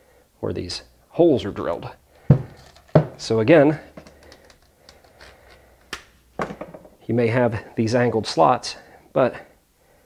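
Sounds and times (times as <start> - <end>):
person speaking: 0.4 - 5.5.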